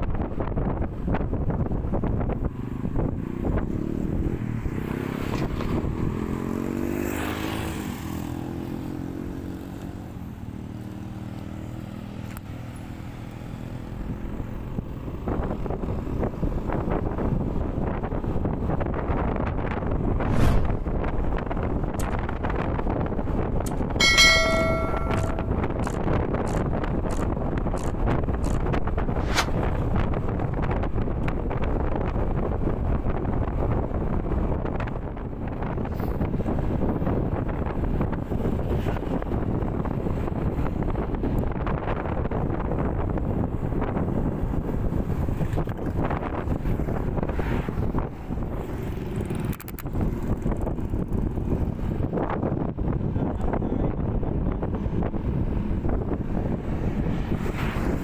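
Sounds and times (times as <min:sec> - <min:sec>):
wind noise on microphone: 0:00.0 - 0:58.0
short bell-like chime: 0:24.0 - 0:25.8.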